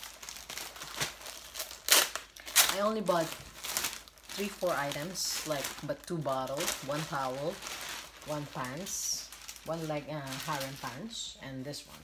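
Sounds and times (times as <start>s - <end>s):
packaging crinkling: 0.0s - 11.1s.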